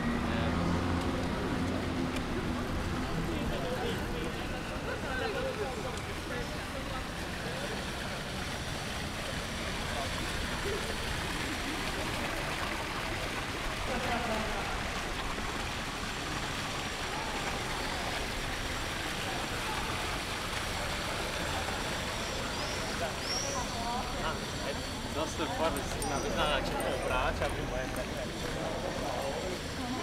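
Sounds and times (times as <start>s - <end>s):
faint voices: 0.0s - 30.0s
outdoor noise: 0.0s - 30.0s.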